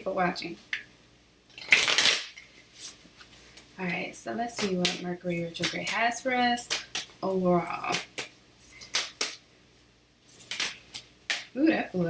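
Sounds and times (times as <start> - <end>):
cards being shuffled: 1.7 - 3.7, 4.5 - 7.2, 7.8 - 9.4, 10.3 - 11.5.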